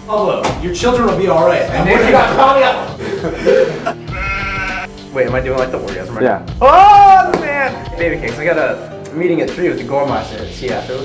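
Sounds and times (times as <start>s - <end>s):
man's bleat-like vocal sound: 4.1s - 4.9s.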